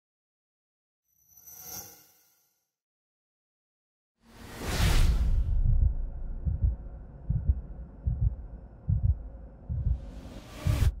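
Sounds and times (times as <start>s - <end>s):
heartbeat thumps: 5.4s - 11.0s
faint low hum: 5.7s - 10.4s.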